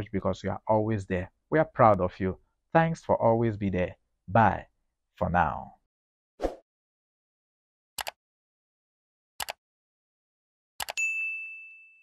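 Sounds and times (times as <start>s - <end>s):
bright bell ding: 11.0s - 12.0s.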